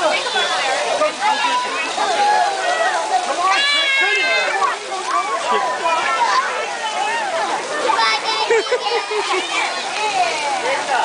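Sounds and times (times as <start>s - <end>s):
chatter of children and adults: 0.0s - 11.0s.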